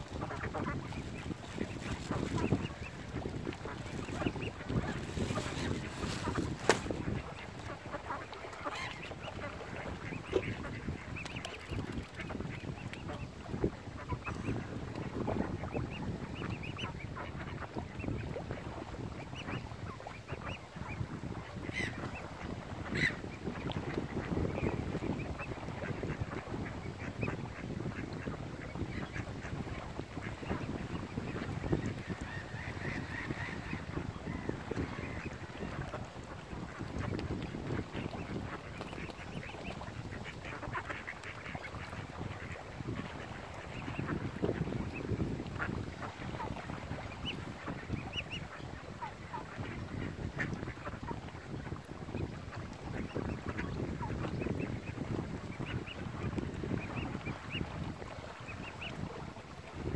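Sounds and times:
ducks quacking: 0:00.1 - 0:13.4, 0:20.3 - 0:52.4, 0:53.0 - 0:59.2.

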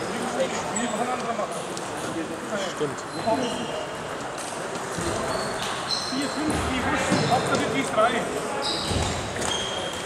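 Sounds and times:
background chatter: 0:00.0 - 0:10.0
brief high squeaks: 0:05.1 - 0:06.4, 0:08.6 - 0:10.0.

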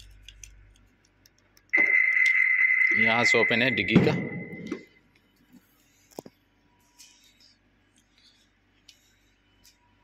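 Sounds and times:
car warning buzzer beeping: 0:01.8 - 0:04.7.

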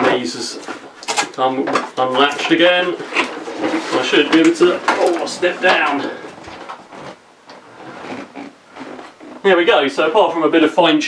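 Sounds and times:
knocks and shuffling: 0:00.0 - 0:09.8.

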